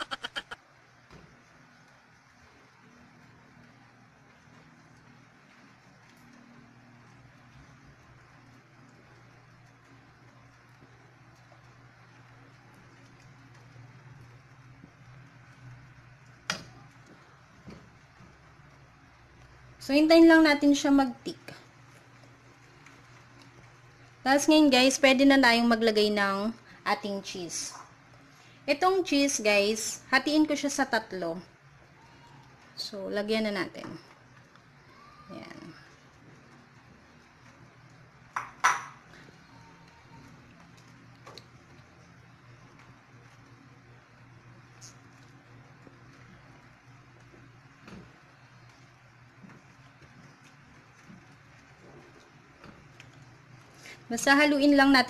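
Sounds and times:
low steady hum: 0.0 - 55.0.

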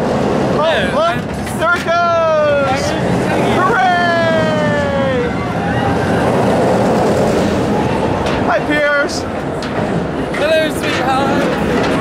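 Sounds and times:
roller coaster train roaring on track: 0.0 - 12.0
riders screaming: 1.8 - 7.2.

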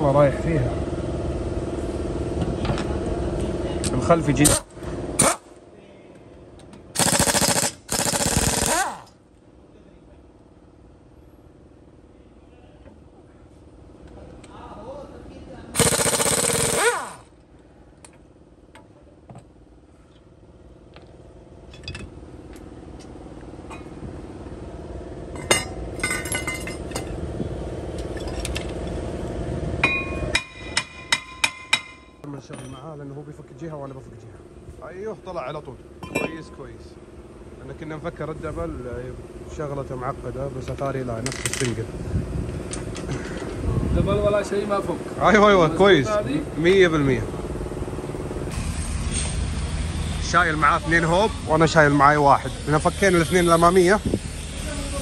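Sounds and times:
steady hum: 0.2 - 41.2, 41.8 - 55.0
pneumatic impact wrench bursts: 4.4 - 5.5, 7.0 - 9.2, 15.8 - 17.4, 48.5 - 55.0.

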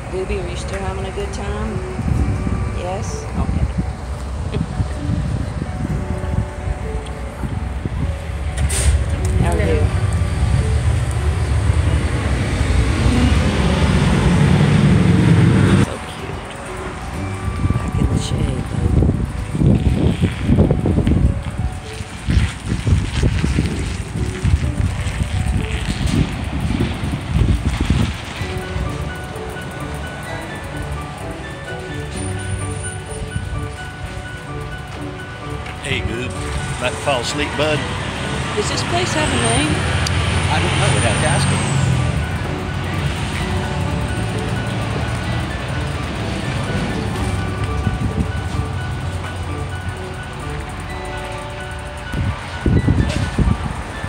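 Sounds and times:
voices: 0.0 - 1.8, 2.6 - 5.2, 9.2 - 10.4, 15.6 - 19.3, 35.7 - 49.3
wind buffeting microphone: 0.0 - 54.0.

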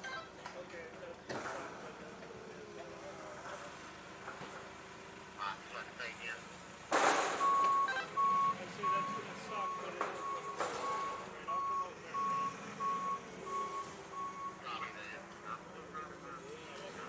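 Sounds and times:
forklift reversing alarm beeping: 7.3 - 15.0.

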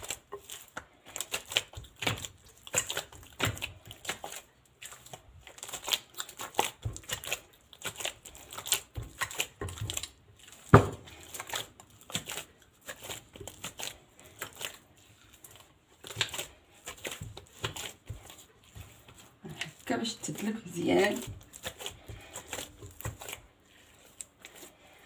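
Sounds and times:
dough squelching and slapping: 0.0 - 25.0.

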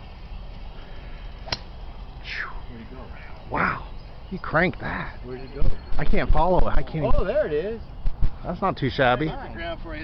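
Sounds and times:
golf club striking ball: 1.4 - 1.9.

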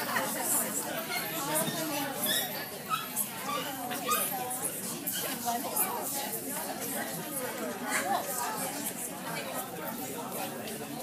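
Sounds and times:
indistinct chatter of people: 0.0 - 11.0.

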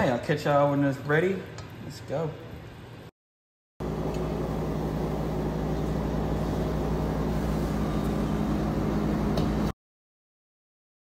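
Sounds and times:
low mechanical hum: 3.8 - 9.8.

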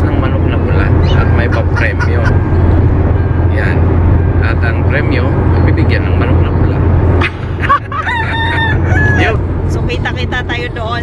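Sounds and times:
low car hum: 0.0 - 11.0
man imitating rooster crow: 8.0 - 9.4.

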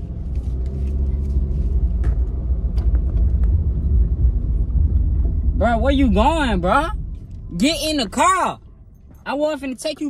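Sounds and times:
car engine rumble inside cabin: 0.0 - 10.0.

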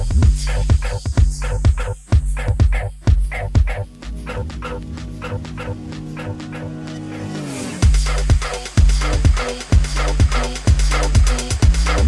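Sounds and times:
kick drum pounding: 0.0 - 5.7, 7.8 - 12.0
sustained synth tones: 3.6 - 7.9.

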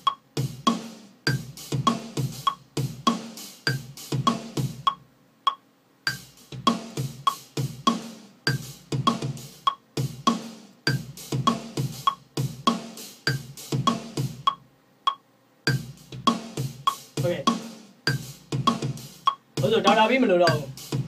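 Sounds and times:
drum machine beat: 0.0 - 21.0.

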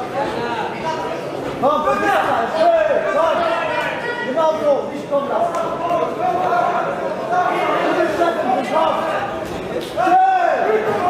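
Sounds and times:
people shouting in echoing hall: 1.6 - 4.7, 5.7 - 11.0.

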